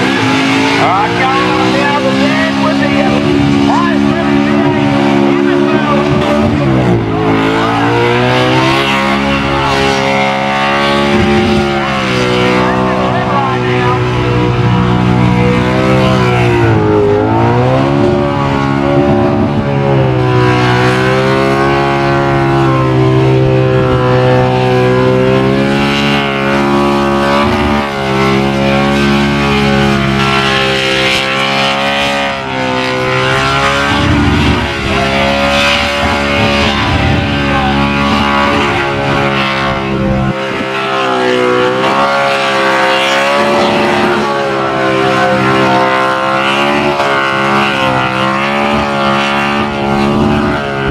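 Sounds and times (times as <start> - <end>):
car engine at high revs: 0.0 - 50.9.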